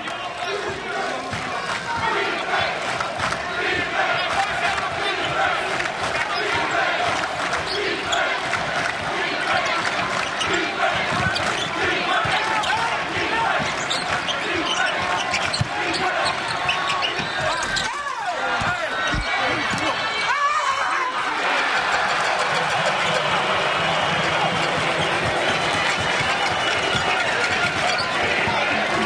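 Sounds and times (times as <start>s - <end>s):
arena crowd voices: 0.0s - 29.0s
sneakers squeaking on court: 10.2s - 17.9s.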